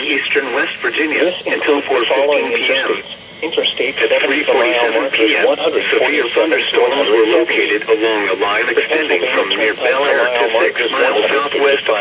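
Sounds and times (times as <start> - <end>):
broadcast voice through radio speaker: 0.0 - 12.0.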